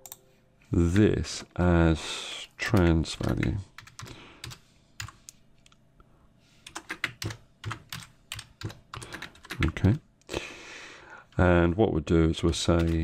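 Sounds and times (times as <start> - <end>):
computer keyboard typing: 2.7 - 5.2, 6.6 - 10.0, 12.5 - 13.0.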